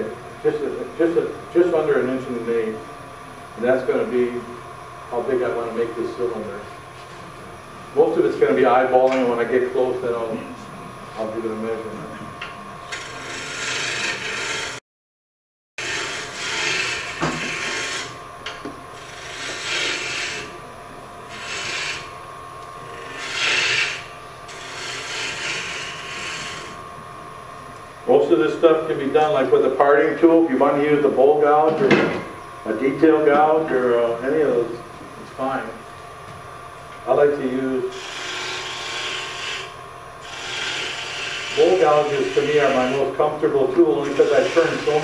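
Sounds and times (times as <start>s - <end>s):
lathe gouge cutting wood: 12.9s - 14.8s, 15.8s - 18.2s, 19.0s - 20.5s, 21.3s - 22.1s, 22.9s - 26.8s, 37.9s - 43.2s, 43.9s - 45.0s.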